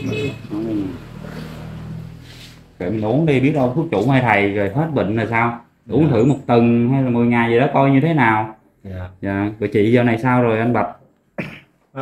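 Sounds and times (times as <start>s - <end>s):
person speaking: 0.0s - 1.4s, 2.8s - 11.0s.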